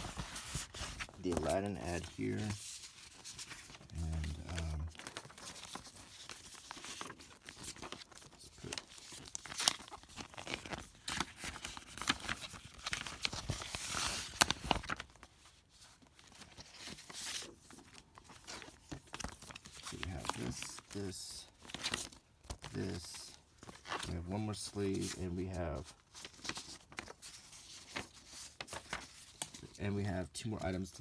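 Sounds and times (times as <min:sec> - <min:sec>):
paper and plastic sleeves rustling: 0:00.0 - 0:31.0.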